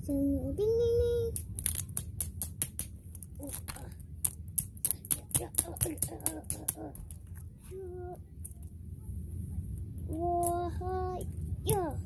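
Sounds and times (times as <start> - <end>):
child singing: 0.0 - 1.4, 10.1 - 12.0
steady low hum: 0.0 - 12.0.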